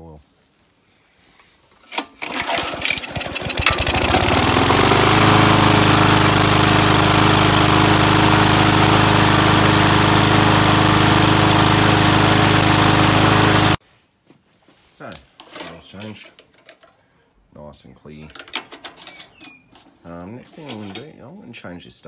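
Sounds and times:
lawn mower engine starting up: 0:01.9 - 0:13.8.

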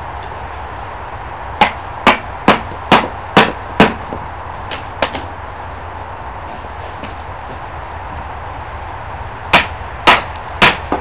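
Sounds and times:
knocks of steel wedges and hammer: 0:01.6 - 0:05.2, 0:09.5 - 0:11.0.

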